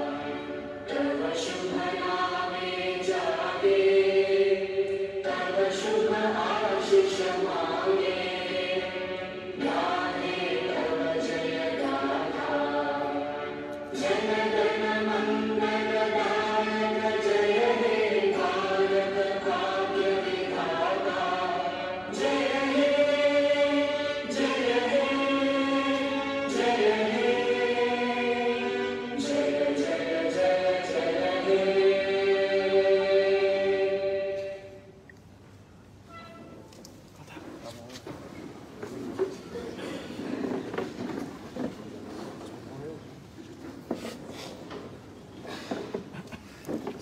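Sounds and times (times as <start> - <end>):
choir singing: 0.0 - 35.0.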